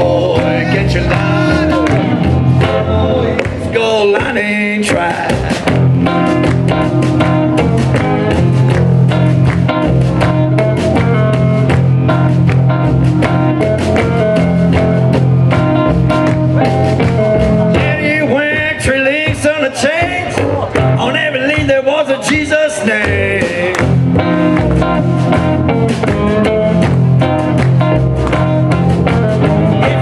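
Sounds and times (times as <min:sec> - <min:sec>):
drum kit: 0:00.0 - 0:30.0
electric guitar: 0:00.0 - 0:30.0
plucked upright double bass: 0:05.5 - 0:18.6, 0:23.1 - 0:30.0.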